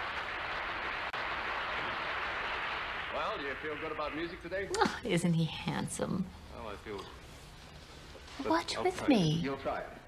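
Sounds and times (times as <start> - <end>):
audience applauding through tv: 0.0 - 4.6.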